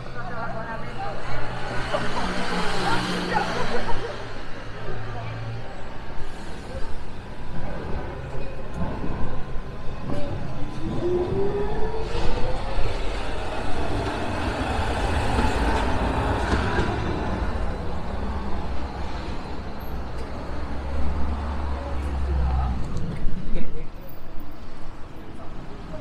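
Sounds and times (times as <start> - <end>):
tram motors whining: 0.0 - 22.5
street traffic noise: 0.0 - 26.0.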